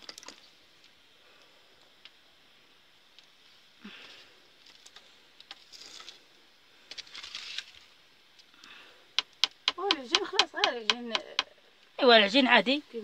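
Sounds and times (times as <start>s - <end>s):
wood fire crackling: 0.0s - 12.6s.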